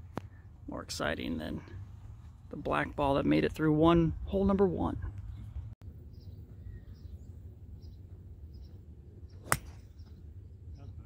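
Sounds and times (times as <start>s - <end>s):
faint bird chirps: 5.3s - 11.0s
golf club striking ball: 9.4s - 10.0s.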